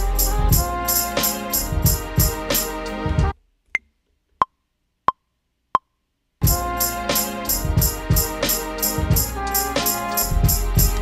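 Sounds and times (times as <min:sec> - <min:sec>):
hip-hop beat: 0:00.0 - 0:03.3, 0:06.4 - 0:11.0.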